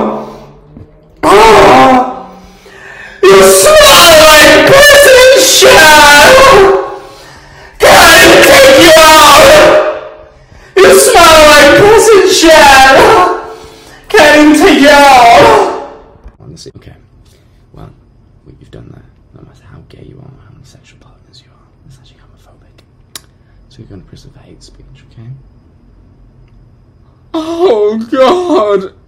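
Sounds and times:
loud distorted vocal wail: 0:00.0 - 0:00.4, 0:01.2 - 0:02.4, 0:03.2 - 0:07.1, 0:07.7 - 0:16.1, 0:27.3 - 0:29.0
man whispering: 0:18.6 - 0:22.9.

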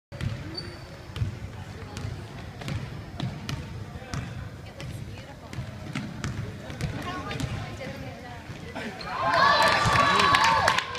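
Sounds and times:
murmur of spectators talking: 0:00.1 - 0:10.9
basketball dribbling on hardwood: 0:01.2 - 0:07.7.

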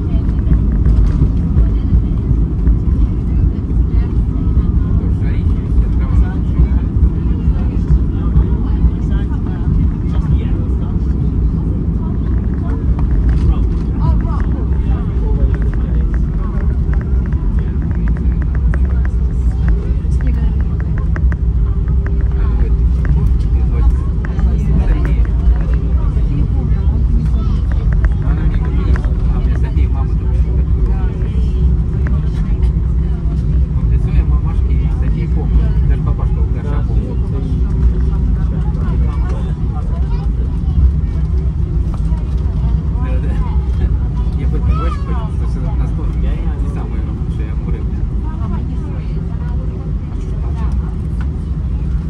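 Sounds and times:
airliner cabin rumble: 0:00.0 - 0:52.0
people's voices: 0:00.0 - 0:52.0.

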